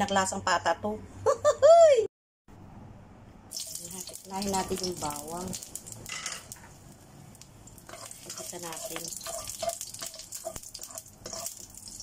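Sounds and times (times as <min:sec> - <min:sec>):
garlic sizzling in hot oil: 0:03.5 - 0:12.0.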